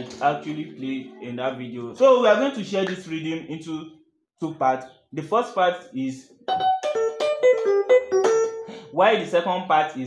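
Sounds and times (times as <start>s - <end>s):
keyboard playing quick piano notes: 6.4s - 9.0s.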